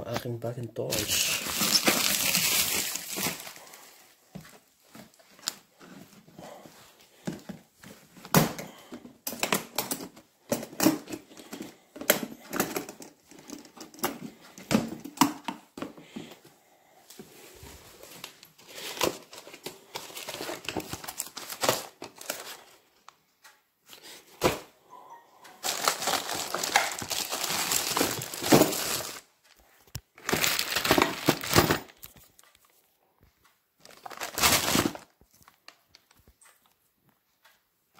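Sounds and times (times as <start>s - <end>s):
plastic bags crinkling: 0.8s - 7.3s, 17.4s - 22.8s, 25.5s - 32.5s, 33.8s - 36.2s.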